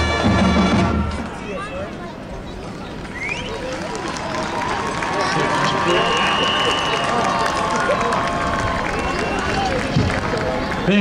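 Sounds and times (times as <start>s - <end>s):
stadium crowd cheering: 2.6s - 11.0s.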